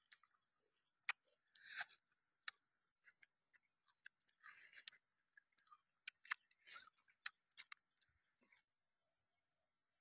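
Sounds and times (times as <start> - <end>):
children chewing meat: 0.0 - 8.6.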